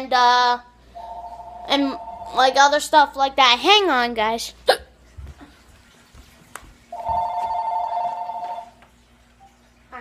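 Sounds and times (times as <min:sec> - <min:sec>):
phone ringing: 0:01.0 - 0:02.5, 0:07.0 - 0:08.8.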